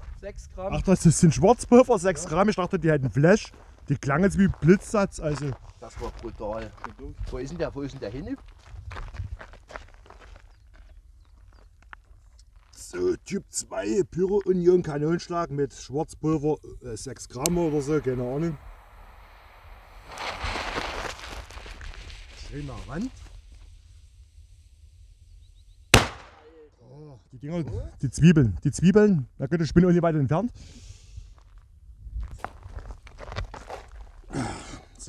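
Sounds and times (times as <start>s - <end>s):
wind rumble on microphone: 0.0s - 1.7s, 5.6s - 10.0s, 31.1s - 33.5s
footsteps on gravel: 4.5s - 7.4s, 8.0s - 12.8s, 20.2s - 22.4s, 31.4s - 34.3s
burning fuse hissing: 16.6s - 26.4s
firecracker bang: 17.5s - 23.5s, 26.0s - 26.6s.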